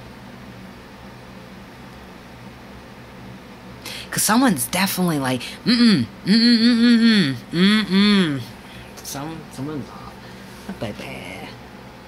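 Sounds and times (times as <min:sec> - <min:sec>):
low hum: 0:05.4 - 0:08.7.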